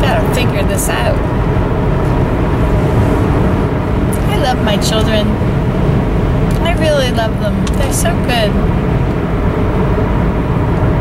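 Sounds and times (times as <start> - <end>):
car road noise inside cabin: 0.0 - 11.0.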